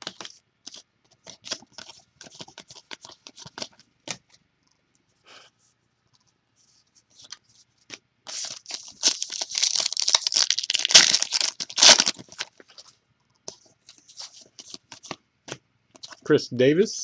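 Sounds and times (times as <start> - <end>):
wrapper tearing and crinkling: 8.3 - 12.6.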